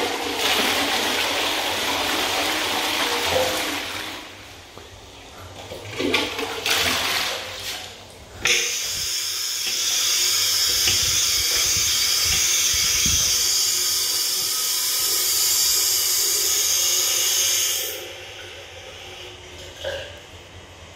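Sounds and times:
tap water running into basin: 0.0s - 20.3s.

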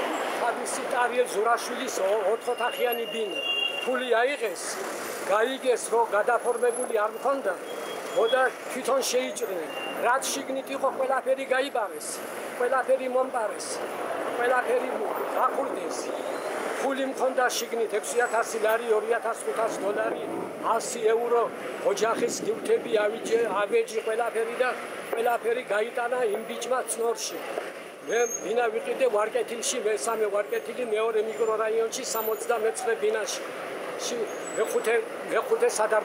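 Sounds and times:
man speaking: 0.0s - 7.6s, 8.2s - 13.8s, 14.4s - 16.1s, 16.8s - 27.4s, 28.1s - 33.4s, 34.0s - 36.0s
man talking: 0.0s - 7.6s, 8.2s - 13.8s, 14.4s - 16.1s, 16.8s - 27.4s, 28.0s - 36.0s
traffic driving past: 0.0s - 36.0s.

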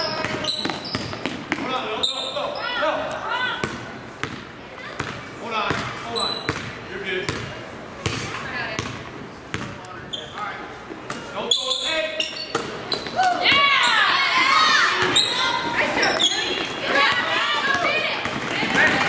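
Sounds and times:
people talking and calling out: 0.0s - 19.0s
sneakers squeaking: 0.0s - 19.0s.

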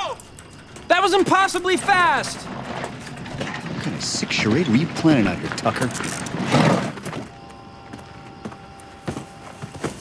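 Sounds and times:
wheelbarrow wheel crunching over gravel: 0.8s - 7.3s.

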